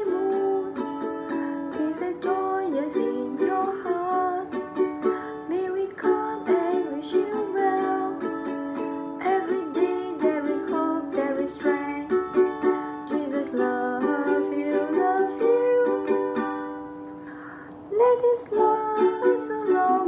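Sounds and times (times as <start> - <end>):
ukulele strumming: 0.0 - 20.0.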